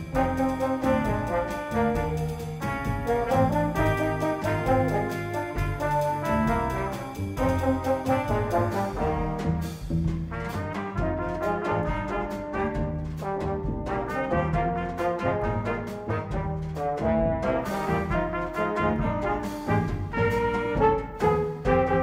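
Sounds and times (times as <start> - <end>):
double bass: 0.0 - 22.0
drum kit with cymbal strokes: 0.0 - 22.0
trumpet and horns melody: 0.0 - 22.0.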